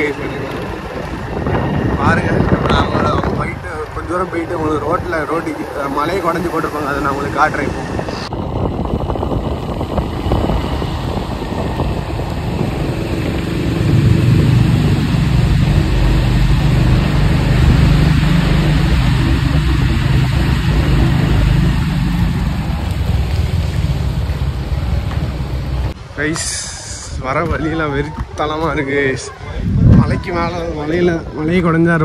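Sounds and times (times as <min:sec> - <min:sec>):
car driving on wet road: 0:00.0 - 0:26.0.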